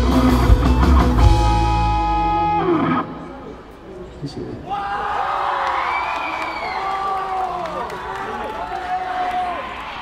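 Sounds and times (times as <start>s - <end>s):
live rock band playing: 0.0s - 3.5s.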